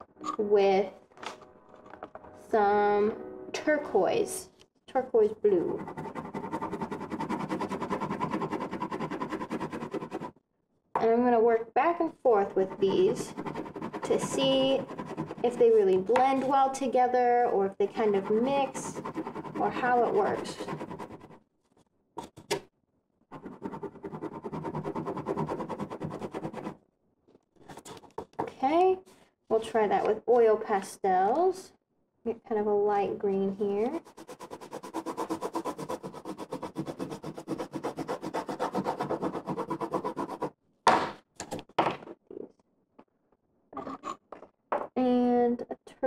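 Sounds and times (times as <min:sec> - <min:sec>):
crayon scribbling on paper: 0:05.5 - 0:10.3, 0:12.4 - 0:16.7, 0:17.8 - 0:21.4, 0:23.3 - 0:26.8, 0:33.8 - 0:40.5.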